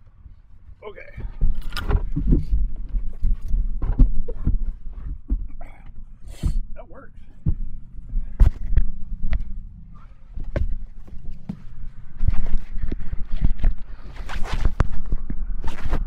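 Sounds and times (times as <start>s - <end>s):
steady low rumble: 0.0s - 16.0s
rustling: 0.2s - 16.0s.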